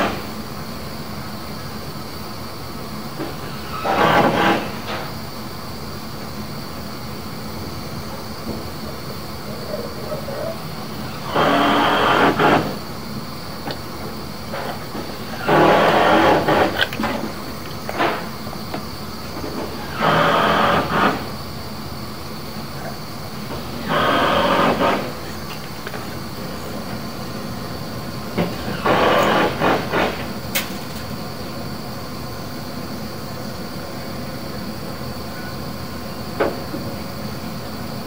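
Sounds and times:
steady background hiss: 0.0s - 38.0s.

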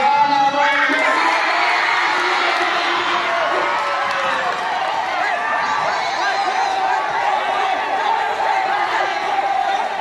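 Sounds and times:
boys shouting and cheering: 0.0s - 10.0s.

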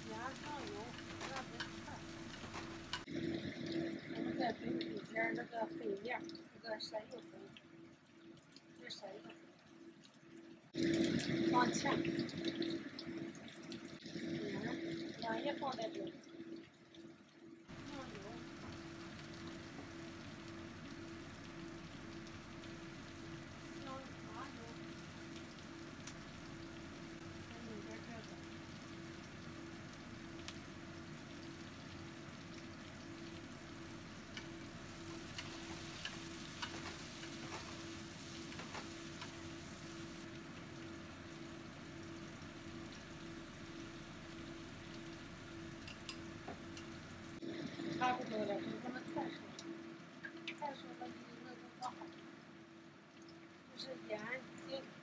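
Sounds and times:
vegetables sizzling in a wok: 0.0s - 3.2s, 11.0s - 12.8s, 17.7s - 49.3s.

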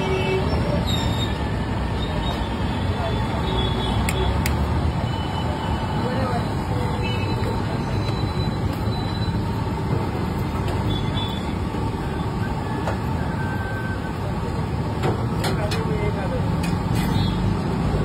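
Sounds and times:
low street rumble: 0.0s - 18.0s.

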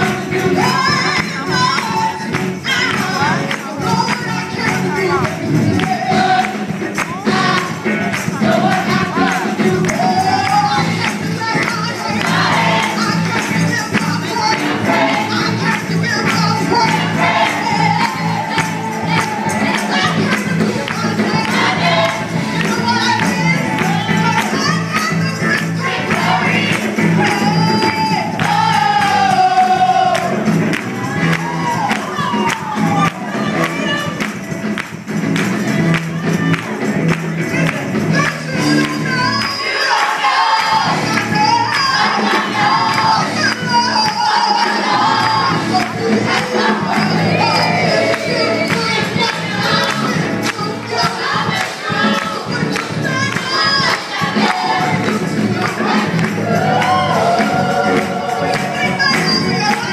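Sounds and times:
gospel choir singing: 0.0s - 34.2s, 37.8s - 59.9s
band accompaniment: 0.0s - 59.9s
congregation voices and shouts: 0.0s - 59.9s
steady percussion beat: 0.0s - 59.9s.

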